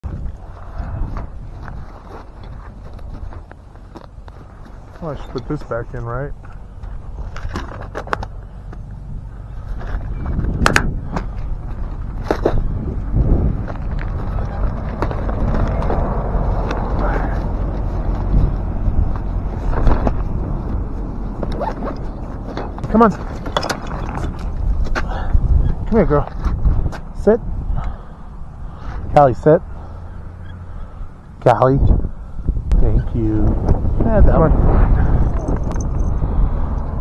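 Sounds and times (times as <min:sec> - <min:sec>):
steady low rumble: 0:00.0 - 0:37.0
rustling and rubbing of gear: 0:00.1 - 0:27.1.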